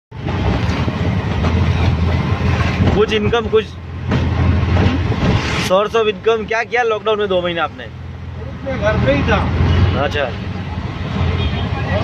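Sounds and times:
auto-rickshaw engine droning and rattling: 0.1s - 12.0s.

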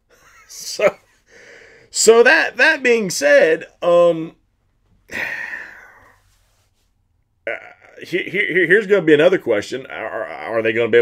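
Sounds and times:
man exhaling breathily: 1.3s - 1.9s, 5.1s - 6.3s
short sharp breath: 1.3s - 1.9s.

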